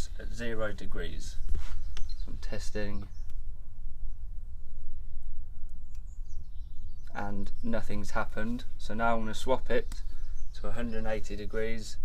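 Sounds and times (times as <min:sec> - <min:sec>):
low outdoor rumble: 0:00.0 - 0:12.0
high bird chirps: 0:01.7 - 0:11.2.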